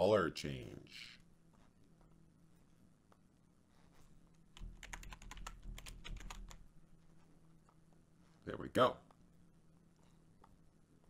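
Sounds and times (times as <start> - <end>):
computer keyboard typing: 4.6 - 6.6.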